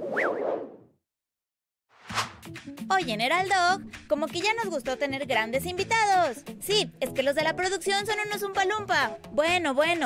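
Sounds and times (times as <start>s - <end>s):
whoosh sound effect: 2.0s - 2.5s.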